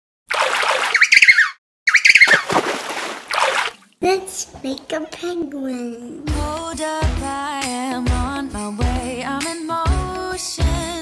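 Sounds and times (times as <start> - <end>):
water splashing: 0.3 - 1.3, 2.0 - 4.0
bird calling: 0.9 - 2.5.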